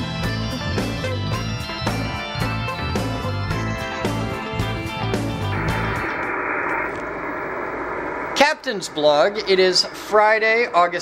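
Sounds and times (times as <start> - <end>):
intro theme music: 0.0 - 8.4
steady hiss: 5.4 - 10.6
man talking: 8.4 - 11.0.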